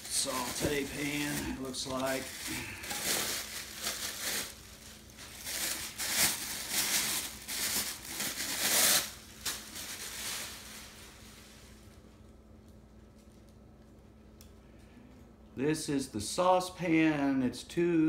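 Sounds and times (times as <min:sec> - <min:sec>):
plastic bag crinkling: 0:00.0 - 0:11.9.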